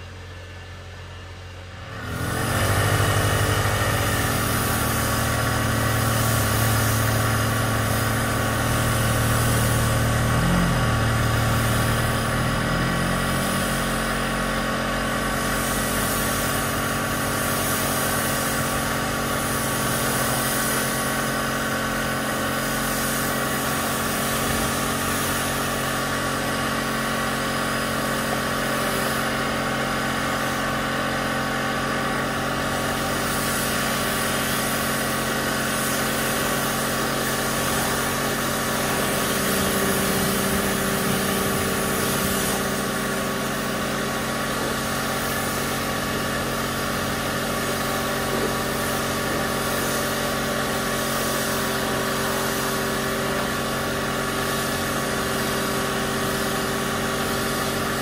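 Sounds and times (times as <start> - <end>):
machine humming with whine: 0.0 - 22.3, 35.0 - 48.8.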